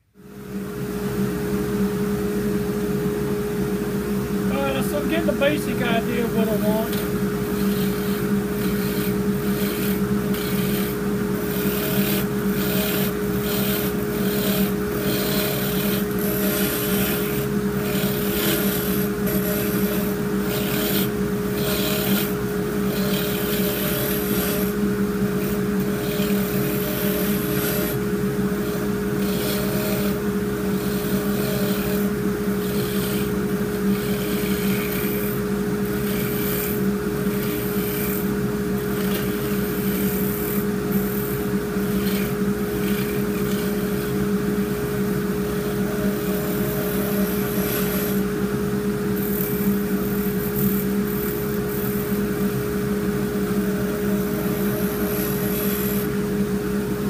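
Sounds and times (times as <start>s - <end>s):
wood lathe motor hum: 0.7s - 57.0s
hiss of tool cutting wood: 4.6s - 28.0s, 54.3s - 56.1s.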